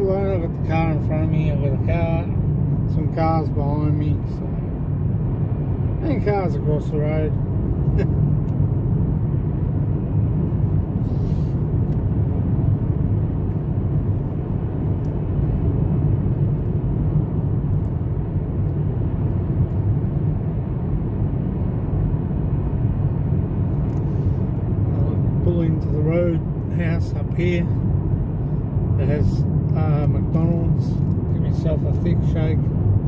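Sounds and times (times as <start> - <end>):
car engine and tyres rumbling: 0.0 - 33.0.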